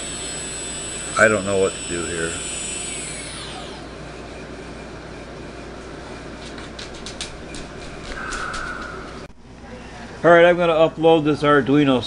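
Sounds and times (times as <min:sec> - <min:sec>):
drone motors whining: 0:00.0 - 0:04.8.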